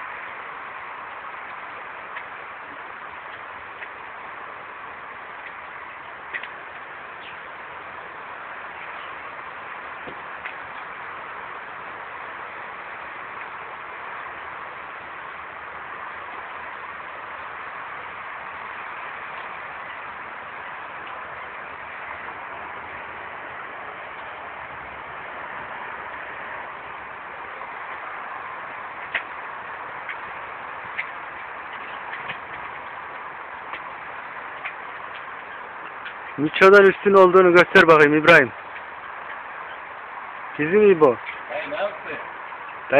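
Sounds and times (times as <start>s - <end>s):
outdoor background hiss: 0.0s - 42.9s.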